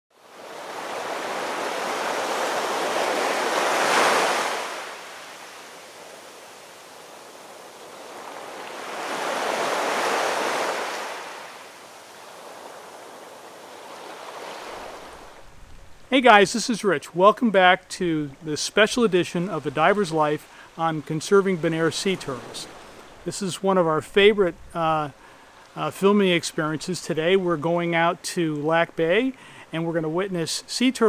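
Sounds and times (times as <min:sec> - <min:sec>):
ocean waves washing in: 0:00.1 - 0:31.0.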